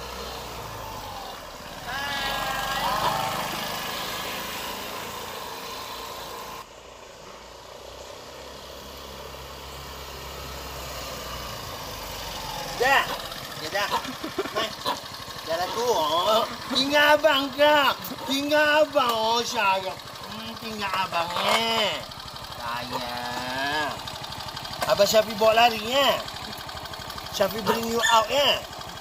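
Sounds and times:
motor scooter engine running: 0.0s - 29.0s.

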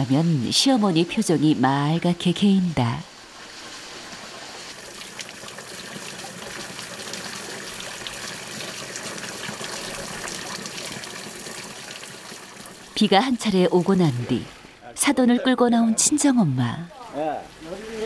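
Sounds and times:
water splashing on waterwheel: 0.0s - 15.2s, 16.9s - 18.0s.

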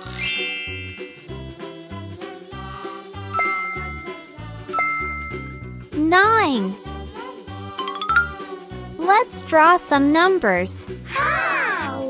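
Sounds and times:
bright ding sound effect: 0.0s - 1.3s, 3.4s - 5.8s, 7.8s - 8.4s
light children's music: 0.0s - 12.0s.

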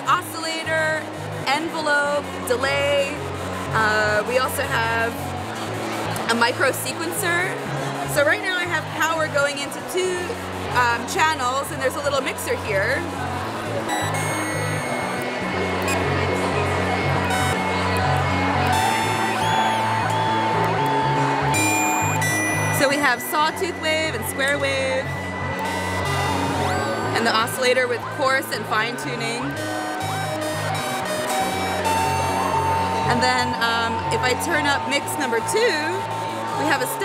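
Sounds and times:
buzzy synthesizer tones: 0.0s - 37.0s.

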